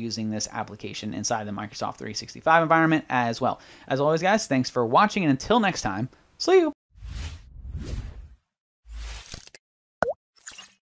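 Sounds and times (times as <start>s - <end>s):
cartoon whooshes: 7.0s - 9.3s.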